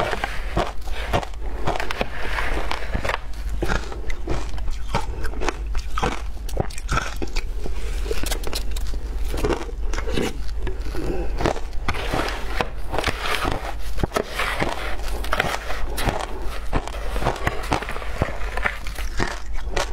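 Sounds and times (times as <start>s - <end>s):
ice being crunched and chewed: 0.0s - 19.9s.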